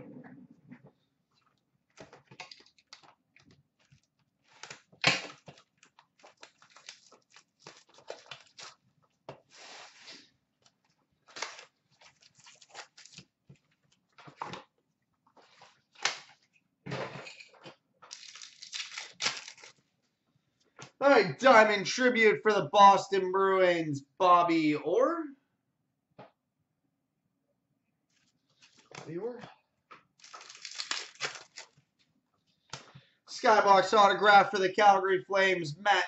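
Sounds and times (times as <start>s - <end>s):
card packs ripping and crinkling: 4.6s - 8.8s, 11.3s - 13.3s, 18.1s - 19.8s, 30.2s - 31.8s.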